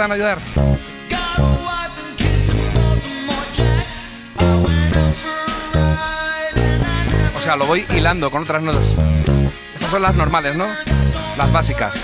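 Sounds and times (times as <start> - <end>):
rock backing with guitar: 0.0 - 12.0
electric bass guitar line: 0.4 - 11.9.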